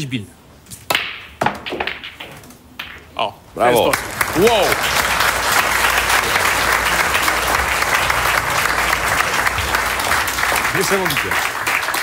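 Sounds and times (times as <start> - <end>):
pool balls clicking together: 0.9 - 3.2.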